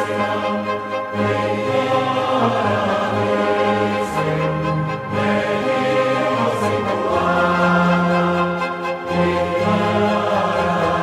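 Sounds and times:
chamber orchestra: 0:00.0 - 0:11.0
mixed choir singing: 0:00.0 - 0:11.0.

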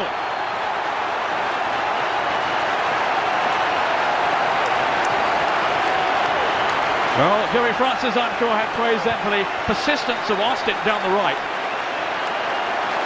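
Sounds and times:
football crowd cheering: 0:00.0 - 0:13.0.

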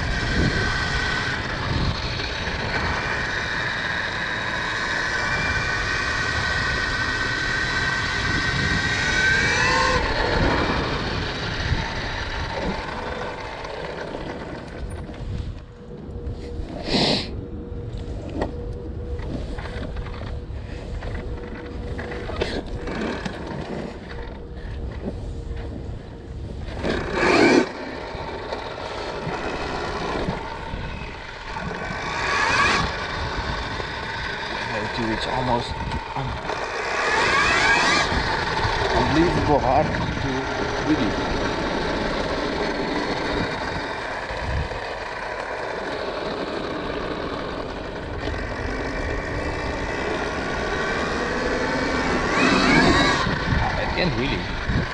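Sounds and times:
electric motorbike motor whining: 0:00.0 - 0:54.9
wind and tyres rumbling: 0:00.0 - 0:54.9.

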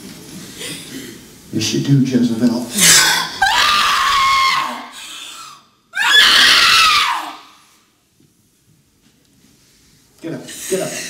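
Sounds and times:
woman screaming: 0:02.8 - 0:05.2, 0:06.0 - 0:07.6.

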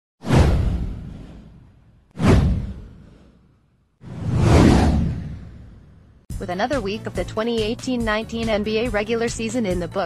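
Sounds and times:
deep boom: 0:00.2 - 0:03.2, 0:04.0 - 0:06.2
whoosh: 0:00.2 - 0:06.3.

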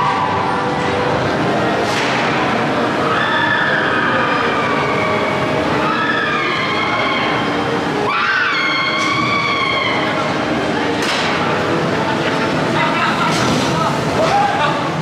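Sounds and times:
roller coaster wheels rumbling: 0:00.0 - 0:15.0
whining coaster wheels: 0:00.0 - 0:15.0.

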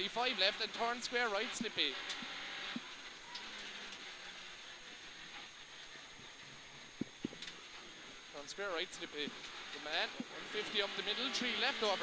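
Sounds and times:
car engine from inside cabin: 0:00.0 - 0:12.0
road noise: 0:00.0 - 0:12.0.

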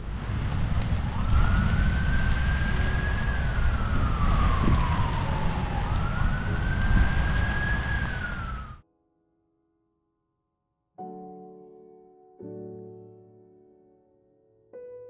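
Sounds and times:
outdoor background noise: 0:00.0 - 0:08.8
siren wailing: 0:01.0 - 0:08.8.

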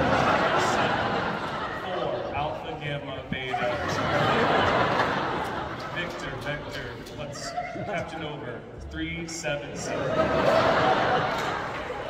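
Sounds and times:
laughter: 0:00.0 - 0:02.6, 0:03.3 - 0:07.9, 0:09.9 - 0:12.0
man speaking over a microphone: 0:00.0 - 0:10.6.

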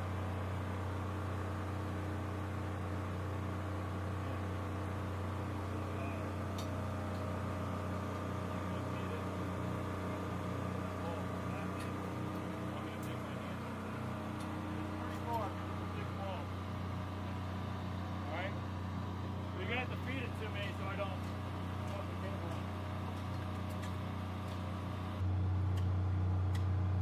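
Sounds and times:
engine humming: 0:00.0 - 0:27.0.

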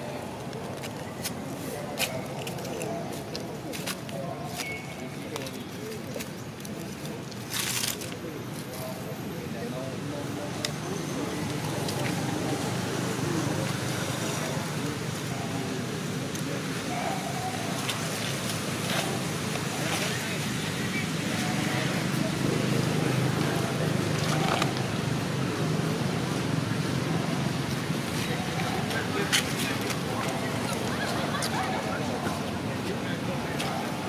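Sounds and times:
faint indistinct voices: 0:00.0 - 0:34.0.

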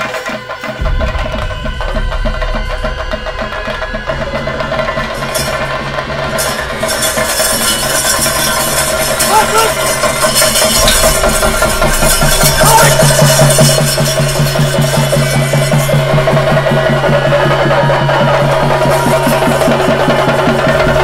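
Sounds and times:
fast drumbeats: 0:00.0 - 0:21.0
sustained low note: 0:00.8 - 0:21.0.

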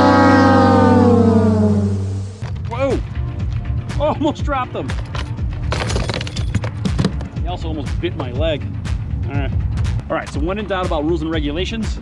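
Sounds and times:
music sting sliding down: 0:00.0 - 0:02.4.

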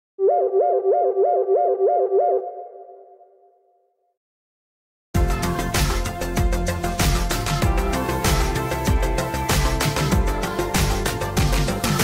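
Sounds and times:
warbling electronic ringtone: 0:00.2 - 0:03.3.

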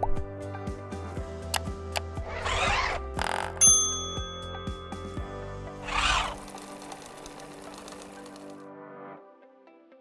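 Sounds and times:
light background music: 0:00.0 - 0:10.0
sewing machine stitching clicks: 0:06.2 - 0:08.6.

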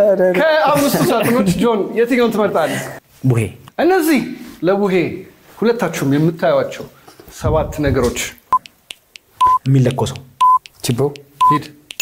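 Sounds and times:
men talking: 0:00.2 - 0:08.4, 0:09.5 - 0:11.8
countdown timer beeping: 0:09.4 - 0:12.0.

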